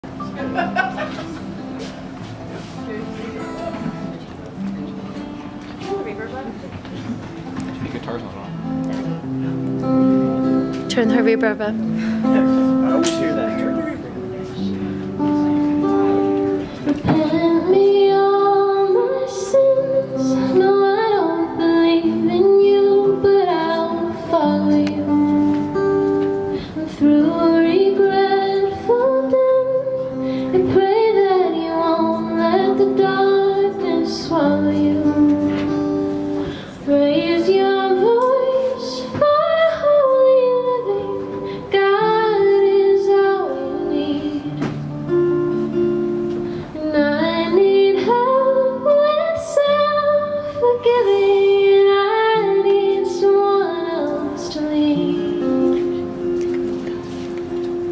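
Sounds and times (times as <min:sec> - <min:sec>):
keyboard accompaniment: 0:00.0 - 0:57.9
strummed acoustic guitar: 0:00.0 - 0:57.9
woman singing: 0:16.9 - 0:25.6, 0:26.4 - 0:36.1, 0:36.7 - 0:45.0, 0:46.8 - 0:56.3.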